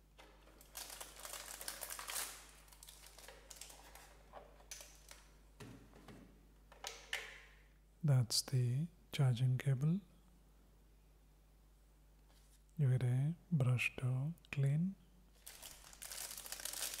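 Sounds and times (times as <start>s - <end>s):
plastic packaging rustling: 0.3s - 5.2s, 15.4s - 17.0s.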